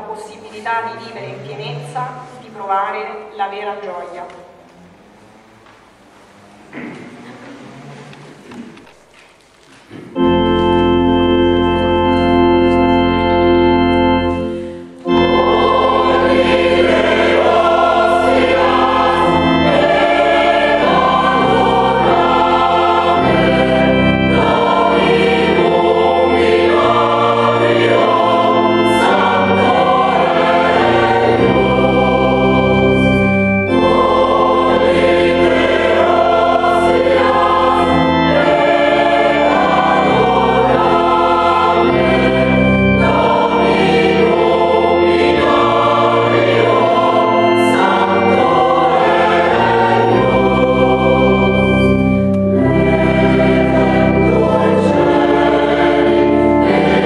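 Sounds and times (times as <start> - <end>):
organ accompaniment: 9.9 - 57.0
mixed choir singing: 14.5 - 57.0.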